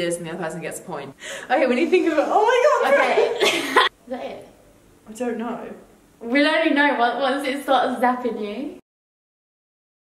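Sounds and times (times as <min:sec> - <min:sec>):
woman laughing: 0:01.9 - 0:04.0.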